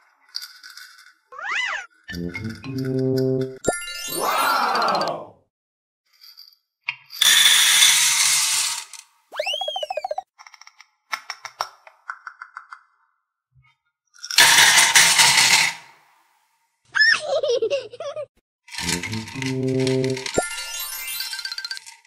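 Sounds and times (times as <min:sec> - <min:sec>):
beads poured into metal tin: 0:07.5 - 0:08.9, 0:18.8 - 0:22.0.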